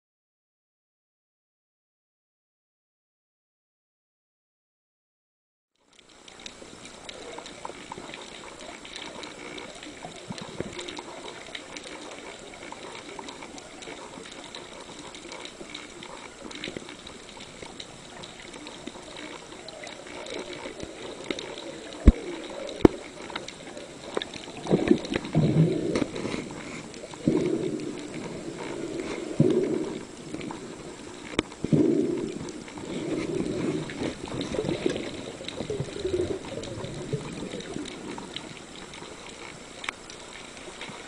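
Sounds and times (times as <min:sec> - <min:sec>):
faint underwater clicking crackle: 0:05.8 - 0:41.0
water gurgling bursts: 0:06.1 - 0:41.0.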